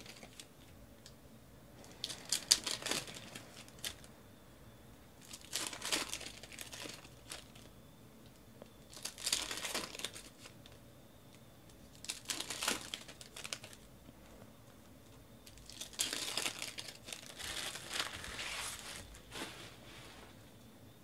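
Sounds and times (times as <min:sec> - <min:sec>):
foil wrappers crinkling and tearing: 0:00.0 - 0:00.5, 0:01.9 - 0:04.1, 0:05.2 - 0:07.7, 0:08.9 - 0:10.8, 0:11.9 - 0:13.9, 0:15.4 - 0:19.2.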